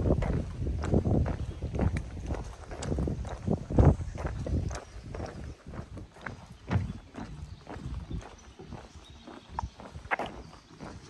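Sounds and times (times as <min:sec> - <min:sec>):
footsteps on floating dock: 0:00.0 - 0:11.0.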